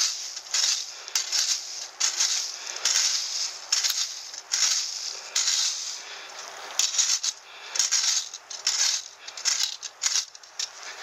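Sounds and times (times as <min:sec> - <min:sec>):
rake scraping dry leaves: 0:00.0 - 0:11.0.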